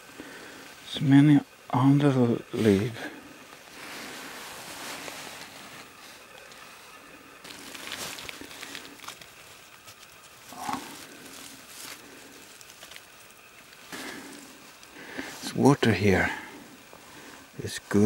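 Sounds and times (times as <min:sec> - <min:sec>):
leaf litter rustling: 0:02.4 - 0:18.0.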